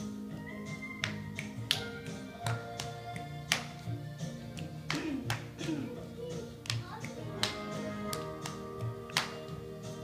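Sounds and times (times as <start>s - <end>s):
background music: 0.0s - 10.0s
hand claps: 0.7s - 10.0s.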